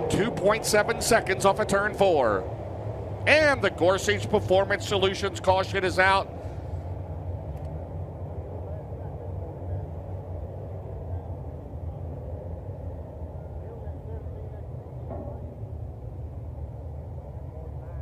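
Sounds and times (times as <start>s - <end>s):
race car engines rumbling: 0.0s - 18.0s.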